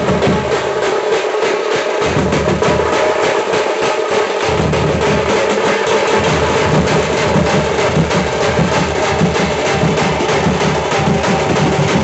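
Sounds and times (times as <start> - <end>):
bass drums and snare drums beating: 0.0 - 12.0.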